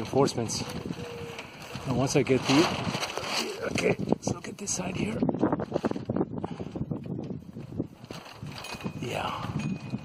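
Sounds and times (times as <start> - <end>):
sail flapping in gusty wind: 0.0 - 10.0.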